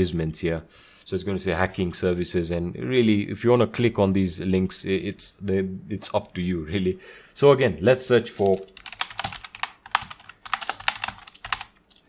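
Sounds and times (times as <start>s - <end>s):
computer keyboard typing: 8.4s - 12.0s.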